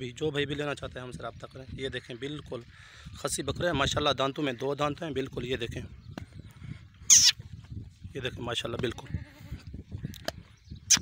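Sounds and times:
goat bleating: 0:08.9 - 0:09.6.

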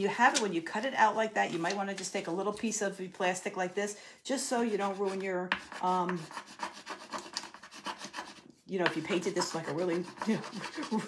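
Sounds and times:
tool scraping on wooden board: 0:05.1 - 0:11.0.

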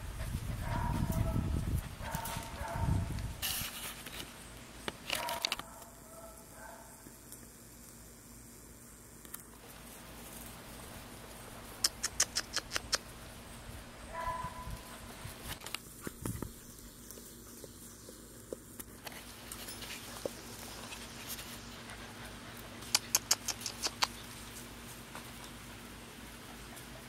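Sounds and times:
sharp clicks: 0:11.8 - 0:13.1, 0:22.8 - 0:24.2.

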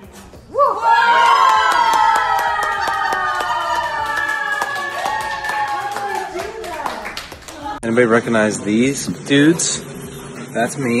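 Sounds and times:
steady clapping beat: 0:01.5 - 0:07.8.

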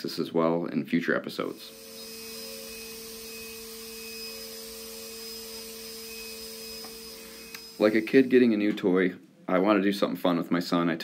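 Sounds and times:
high whine: 0:01.4 - 0:08.6
machine humming: 0:01.4 - 0:08.7.

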